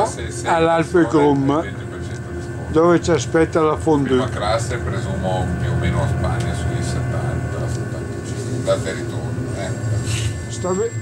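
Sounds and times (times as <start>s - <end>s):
man speaking: 0.0s - 10.8s
train rumble and hum: 0.0s - 11.0s.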